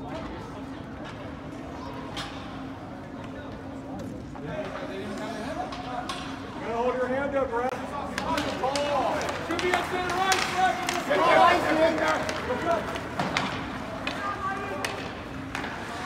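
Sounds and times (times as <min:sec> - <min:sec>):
hockey sticks and puck clacking: 0:04.6 - 0:06.4, 0:07.8 - 0:16.0.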